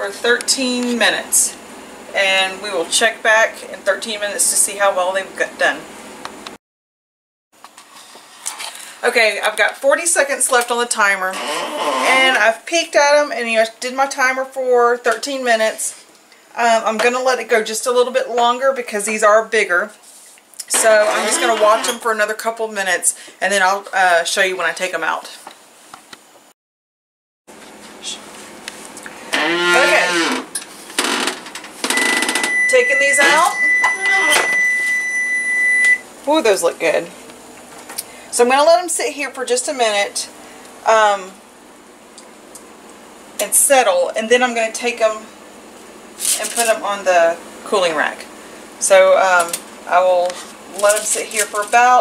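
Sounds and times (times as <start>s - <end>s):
high-pitched electronic tone: 31.9s - 36.0s.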